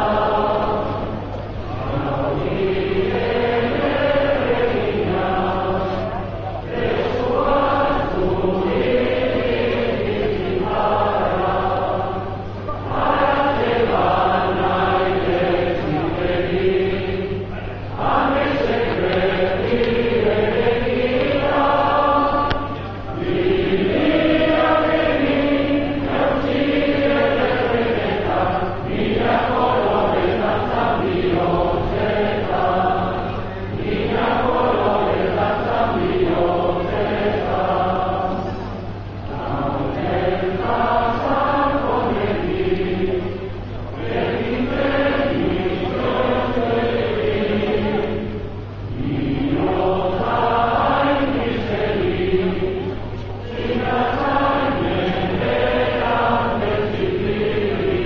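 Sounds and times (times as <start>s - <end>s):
crowd singing in unison: 0.0s - 58.0s.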